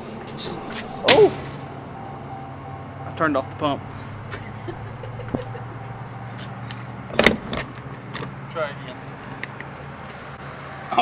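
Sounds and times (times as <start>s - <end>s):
steady low hum: 0.0s - 8.8s.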